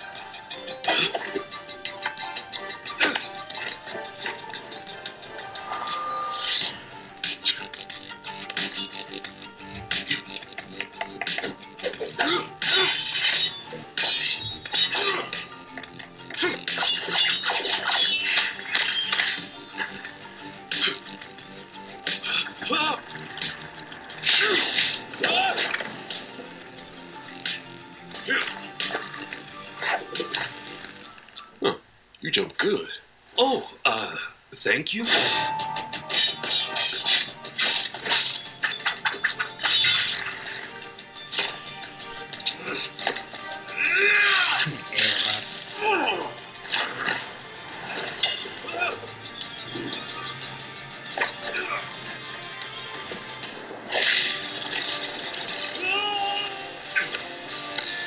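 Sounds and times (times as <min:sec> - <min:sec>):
fight scene music: 0:00.0 - 0:31.1, 0:35.0 - 0:58.0
sword clashing impacts: 0:35.1 - 0:40.2.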